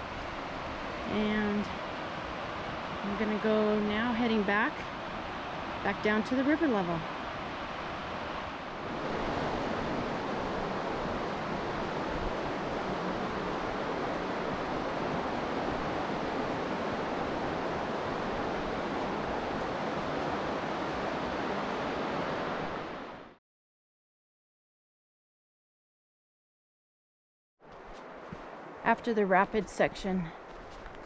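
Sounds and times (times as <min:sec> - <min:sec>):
whitewater rushing: 0:00.0 - 0:23.2.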